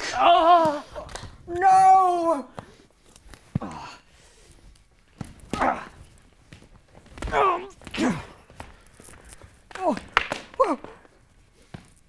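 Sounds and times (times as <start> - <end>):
person grunting: 7.3 - 8.4.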